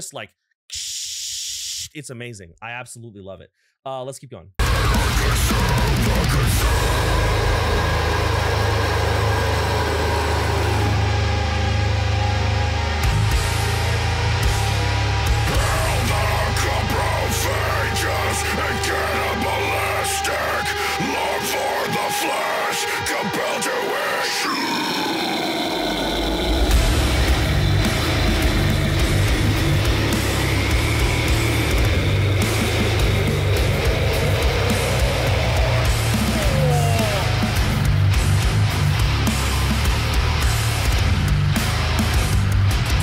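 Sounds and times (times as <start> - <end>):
harsh screamed vocals: 4.6 - 12.1, 15.3 - 38.4
down-tuned guitars: 4.6 - 43.0
heavy drums: 4.6 - 43.0.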